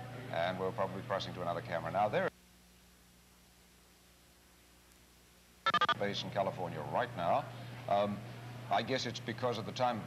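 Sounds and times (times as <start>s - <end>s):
faint steady hum: 0.0s - 10.0s
rapid electronic beeps: 5.7s - 6.0s.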